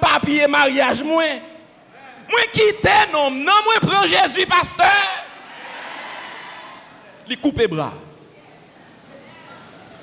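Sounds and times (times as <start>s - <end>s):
man shouting into microphone: 0.0s - 5.4s
faint background hiss: 0.0s - 10.0s.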